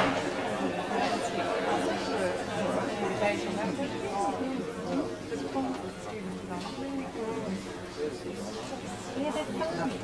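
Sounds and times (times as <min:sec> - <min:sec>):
audience chattering: 0:00.0 - 0:10.0.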